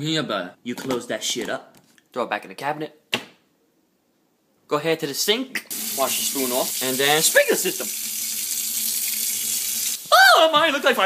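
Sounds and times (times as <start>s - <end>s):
faucet water splashing into sink: 5.7s - 10.1s.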